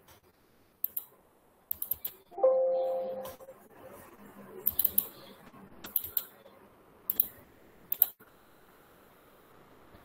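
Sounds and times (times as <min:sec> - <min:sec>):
computer mouse clicking: 0:00.8 - 0:01.1, 0:01.7 - 0:02.2, 0:04.6 - 0:05.2, 0:05.9 - 0:06.3, 0:07.1 - 0:08.2.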